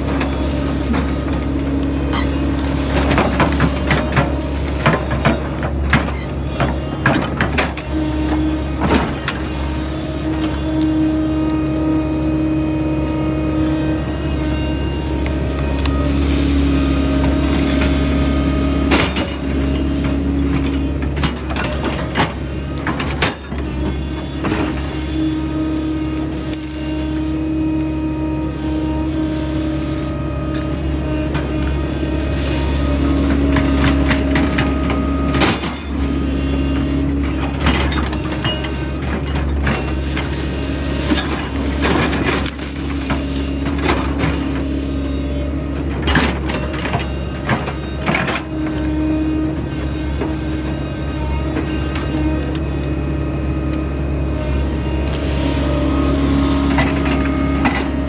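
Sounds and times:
bucket clanking and scraping dirt: 0:00.0 - 0:58.0
excavator engine running: 0:00.0 - 0:58.0
high steady hydraulic tone: 0:00.0 - 0:58.0.

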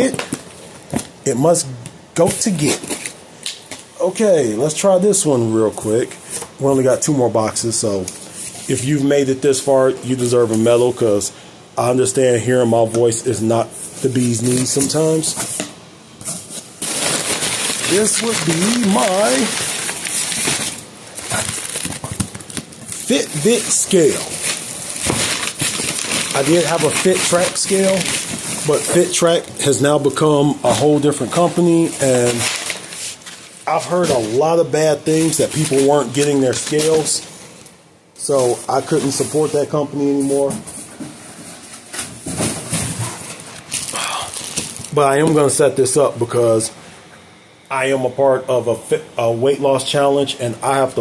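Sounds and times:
packing paper crinkling: 0:16.5 - 0:37.3, 0:43.1 - 0:45.6.

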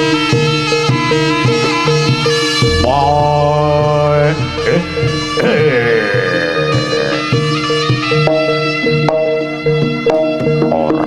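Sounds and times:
gong-chime strokes: 0:02.6 - 0:07.3
deep low tone: 0:02.6 - 0:07.4
reedy shawm note: 0:02.6 - 0:08.2.

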